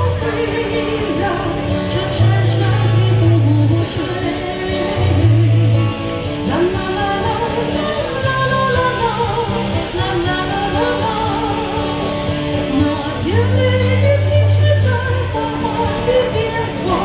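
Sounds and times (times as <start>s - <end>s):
electric guitar: 0.0s - 17.0s
woman singing pop ballad: 0.0s - 17.0s.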